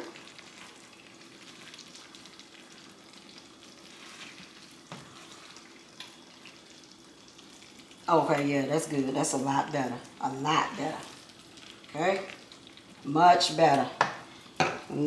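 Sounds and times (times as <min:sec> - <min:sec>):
spatula stirring: 0:00.0 - 0:06.9
gravy sizzling in a skillet: 0:00.0 - 0:15.0
spatula tapping pan: 0:14.0 - 0:14.9.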